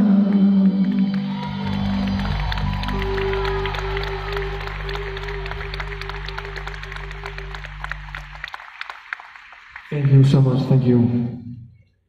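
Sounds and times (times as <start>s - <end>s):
live band holding a chord: 0.0s - 9.1s
audience clapping: 0.2s - 11.1s.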